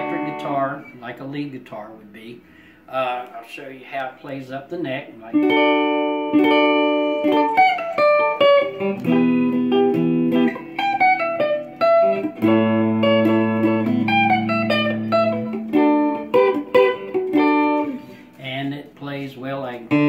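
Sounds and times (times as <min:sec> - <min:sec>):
electric lead guitar: 0:00.0 - 0:01.0, 0:05.2 - 0:20.0.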